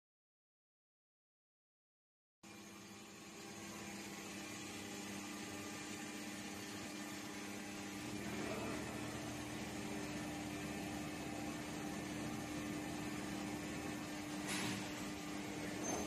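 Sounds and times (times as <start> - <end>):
injection molding machine hum: 2.4 - 16.0.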